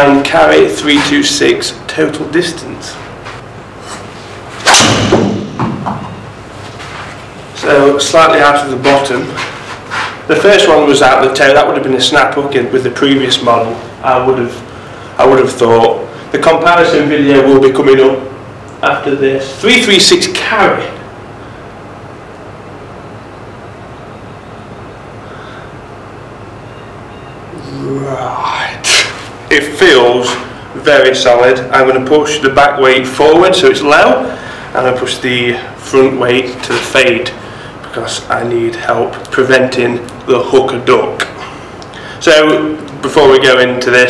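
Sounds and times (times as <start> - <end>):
room hiss with low hum: 0.0 - 44.0.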